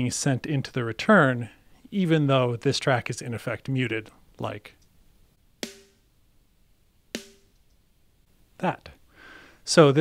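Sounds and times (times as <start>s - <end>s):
compressed drum hit: 5.6s - 6.1s, 7.1s - 7.6s.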